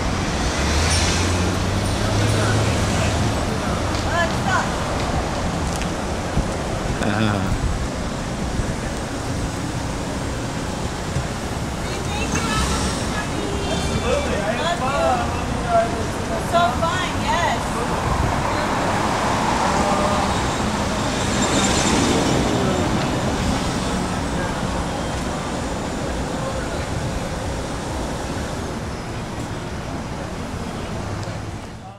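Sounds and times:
street traffic rumble: 0.0s - 31.9s.

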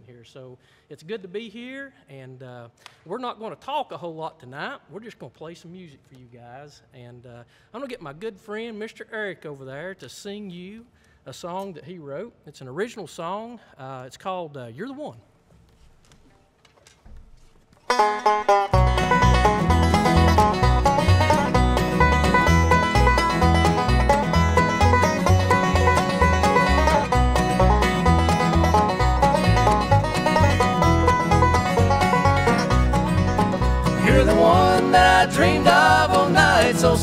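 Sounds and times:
acoustic guitar: 17.8s - 37.0s
banjo picking: 17.8s - 37.0s
mandolin: 17.8s - 37.0s
upright bass steady beat: 18.8s - 37.0s.

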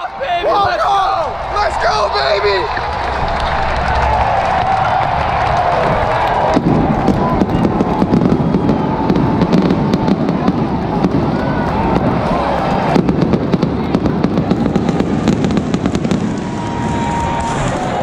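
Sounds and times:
large crowd voices: 0.0s - 18.0s
fireworks cracking and popping: 2.6s - 18.0s.

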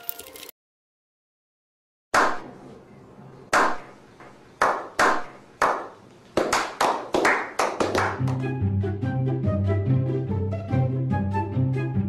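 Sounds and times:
slow hand clapping: 4.6s - 8.5s.

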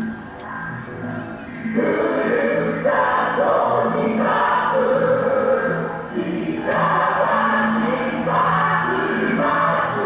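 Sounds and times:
chorus of voices: 0.0s - 10.0s
loud dance music: 1.8s - 10.0s.

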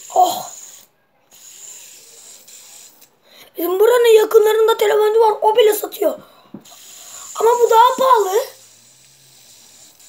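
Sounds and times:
fidget spinner whirring: 0.0s - 10.0s.

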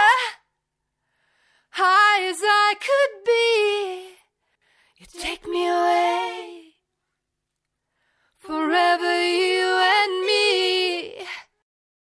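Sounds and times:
woman singing a cappella: 0.0s - 0.6s, 1.6s - 4.3s, 5.0s - 6.8s, 8.4s - 11.6s
singer breath: 1.0s - 1.7s, 4.4s - 5.0s, 7.8s - 8.4s.

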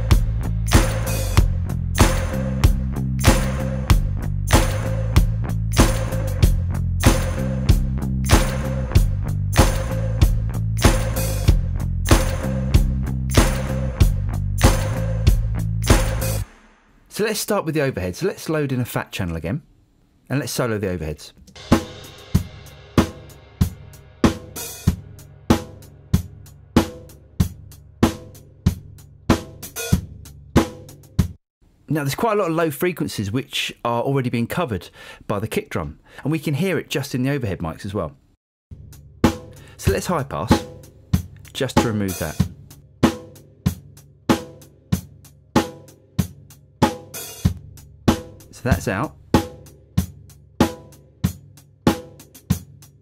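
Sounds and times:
kick drum low end: 0.0s - 8.0s
drum kit steady beat: 0.0s - 16.9s, 21.5s - 31.4s, 38.7s - 53.0s
cymbal and hi-hat wash: 0.0s - 17.0s, 21.6s - 27.0s.

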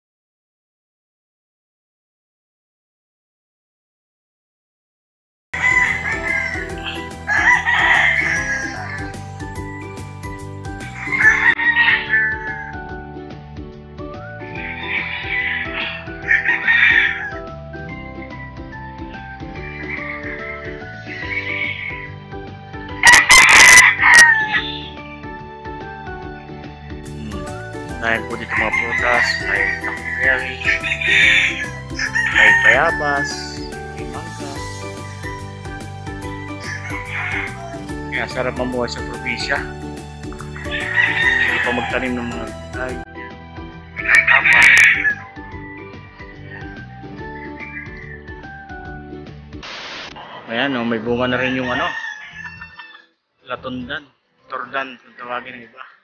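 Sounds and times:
rooster crowing: 5.6s - 9.2s, 10.9s - 12.9s, 14.6s - 17.4s, 23.0s - 24.9s, 28.4s - 33.4s, 36.6s - 37.8s, 40.6s - 42.2s, 44.0s - 45.3s, 51.3s - 53.2s
background music with steady beat: 5.6s - 50.0s
chickens clucking: 28.3s - 33.4s, 40.2s - 42.4s.

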